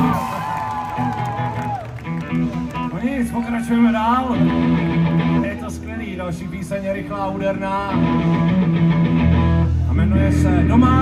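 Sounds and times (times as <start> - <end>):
electric guitars sustained notes: 0.0 - 11.0.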